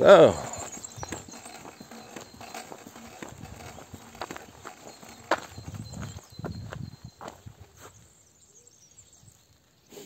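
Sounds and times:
footsteps on dirt path: 0.0s - 8.5s.

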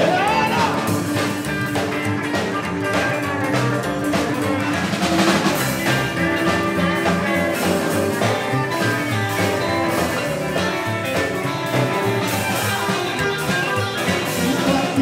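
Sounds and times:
drums: 0.0s - 15.0s
electric guitar lead: 0.0s - 15.0s.

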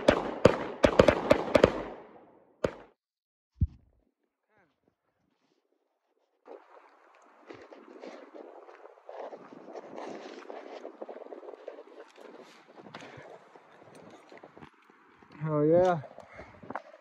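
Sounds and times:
wind noise on microphone: 7.3s - 14.8s.

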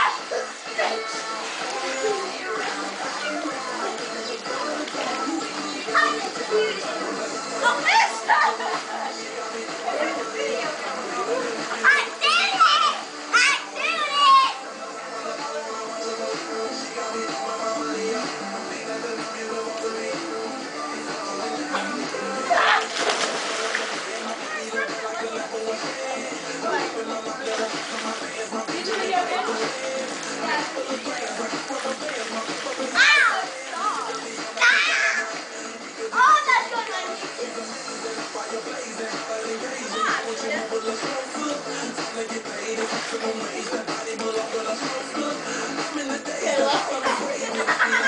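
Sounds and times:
children chattering: 0.0s - 14.6s, 21.6s - 23.0s, 24.1s - 27.2s, 28.5s - 31.8s, 32.6s - 35.4s, 36.0s - 37.4s
background music: 0.0s - 48.0s
girls' excited high-pitched voices: 5.8s - 8.8s, 11.7s - 14.6s, 22.5s - 23.0s, 24.4s - 25.5s, 32.8s - 35.4s, 36.1s - 37.2s, 39.8s - 40.4s.

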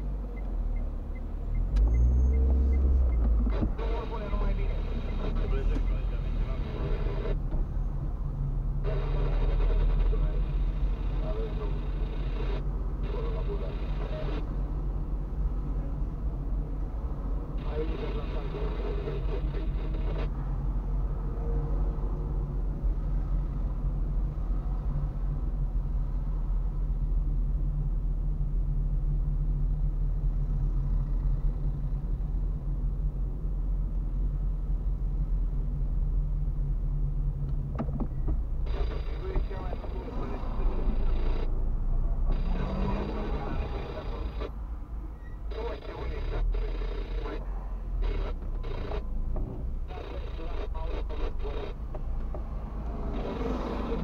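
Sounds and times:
car engine and tyres rumbling: 0.0s - 54.0s.

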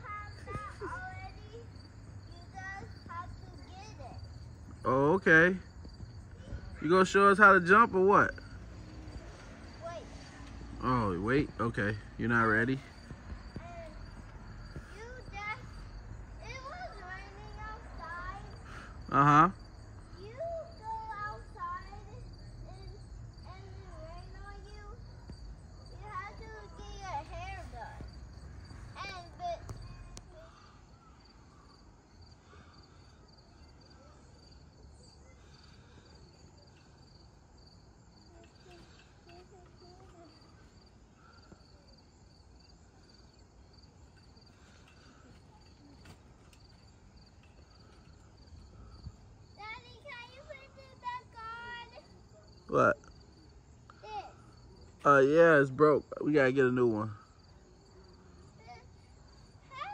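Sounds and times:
child voices: 0.0s - 4.3s, 9.2s - 10.6s, 13.5s - 18.9s, 20.1s - 25.2s, 25.8s - 31.7s, 38.2s - 41.7s, 48.8s - 52.6s, 53.9s - 54.6s, 58.2s - 59.9s
insects chirring: 0.0s - 59.9s.

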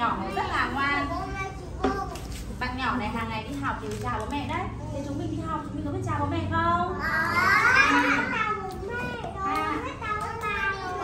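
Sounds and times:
children talking and calling out: 0.7s - 2.6s, 6.9s - 11.0s.

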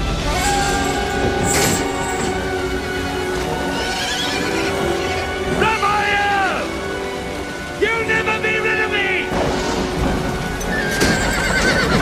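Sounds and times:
orchestral film music: 0.0s - 12.0s
horse whinnying: 3.4s - 5.3s, 10.6s - 12.0s.

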